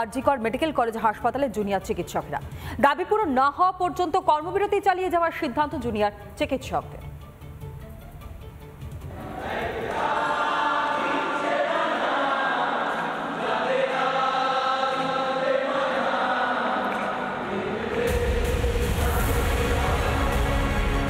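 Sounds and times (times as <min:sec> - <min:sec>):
group of people singing: 0:09.1 - 0:21.0
music with deep bass: 0:18.1 - 0:21.0.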